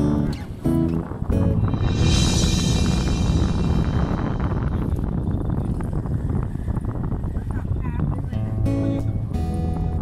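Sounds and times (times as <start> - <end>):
background music with held notes: 0.0 - 5.1, 8.3 - 10.0
low rumbling noise: 0.9 - 8.0.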